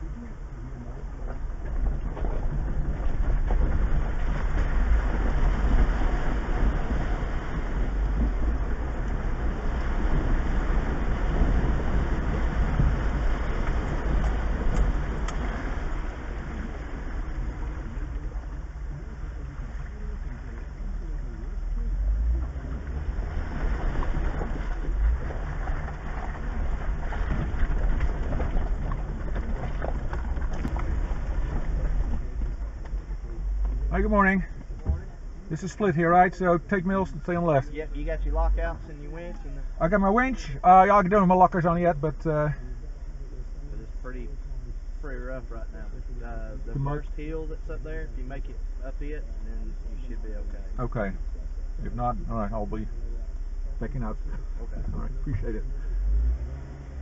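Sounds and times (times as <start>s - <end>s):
engine and drivetrain rumble: 0.0s - 57.0s
tyre and road noise: 0.0s - 57.0s.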